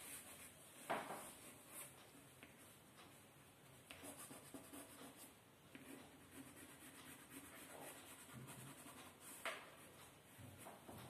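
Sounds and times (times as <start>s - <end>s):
pencil scratching on paper: 3.9s - 9.4s.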